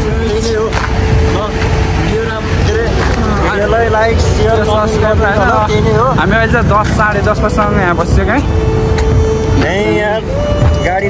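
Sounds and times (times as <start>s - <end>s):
bus engine rumbling: 0.0s - 11.0s
people calling: 0.0s - 11.0s.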